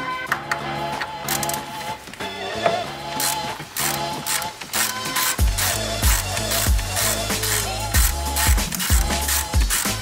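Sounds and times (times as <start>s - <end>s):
background music: 0.0s - 10.0s
ratchet wrench clicking: 1.2s - 1.6s, 3.2s - 10.0s.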